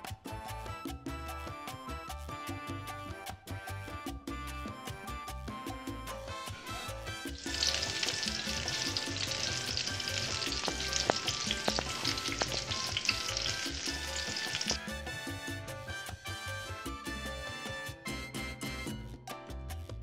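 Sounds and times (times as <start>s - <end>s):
salsa music: 0.0s - 20.0s
bacon grease sizzling and popping: 6.6s - 15.0s.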